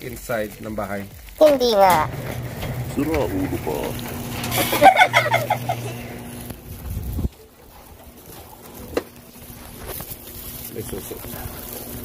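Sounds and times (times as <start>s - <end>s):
door opening click: 1.5s - 6.6s.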